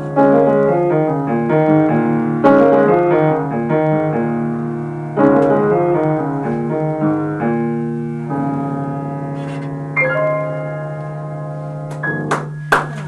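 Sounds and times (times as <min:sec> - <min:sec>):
jazz piano: 0:00.0 - 0:13.0.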